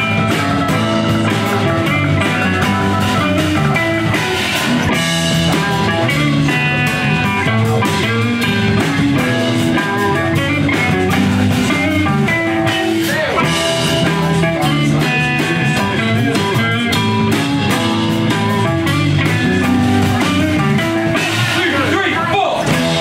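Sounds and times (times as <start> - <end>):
drum kit beat: 0.0 - 23.0
electric guitars playing: 0.0 - 23.0.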